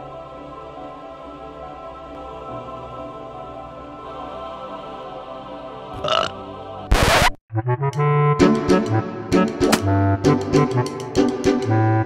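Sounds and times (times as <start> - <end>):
comic burp sound effect: 6.0 - 6.4.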